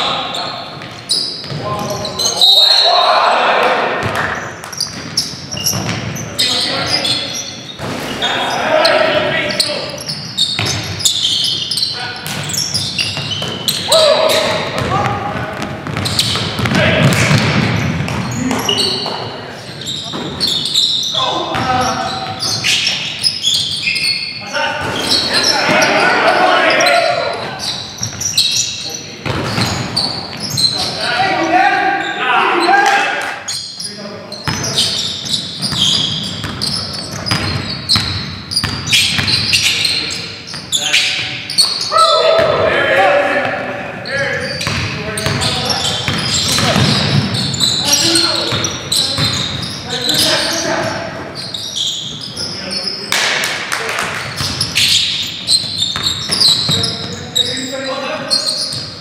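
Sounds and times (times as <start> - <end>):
players calling out: 0.0 - 37.8, 38.8 - 53.3
basketball bouncing on hardwood: 14.8 - 18.4, 46.1 - 47.4.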